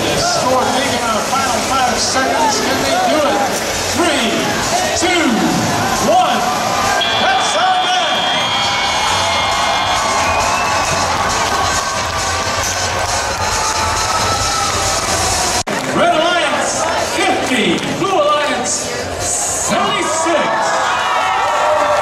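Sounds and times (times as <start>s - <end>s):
arena crowd cheering: 0.0s - 22.0s
announcer speaking over pa: 0.1s - 8.3s.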